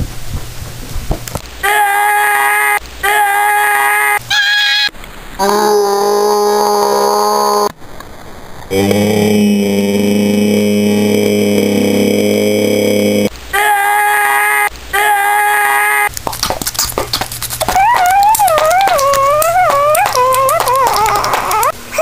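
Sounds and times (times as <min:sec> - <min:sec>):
crackling: 0:16.1 - 0:21.7
wobbling wailing tone: 0:17.6 - 0:21.7
boy yelling: 0:17.7 - 0:21.7.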